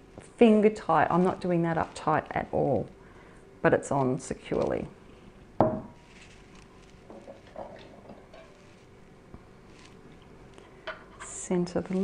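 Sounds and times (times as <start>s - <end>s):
glass jar knocking on wood: 5.6s - 6.0s.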